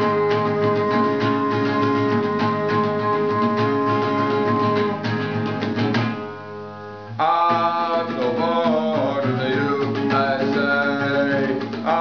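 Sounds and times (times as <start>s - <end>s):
classical guitar strummed rapidly: 0.0s - 12.0s.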